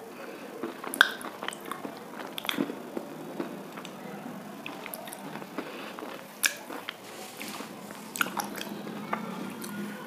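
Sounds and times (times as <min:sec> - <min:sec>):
chewing brittle food: 0:00.2 - 0:04.0, 0:04.6 - 0:09.8
crackles and clicks of teeth grinding: 0:00.6 - 0:04.0, 0:04.6 - 0:09.8.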